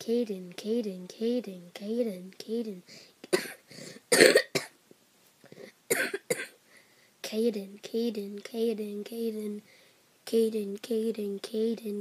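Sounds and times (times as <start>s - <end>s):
boy coughing: 3.3s - 4.8s, 5.6s - 6.6s.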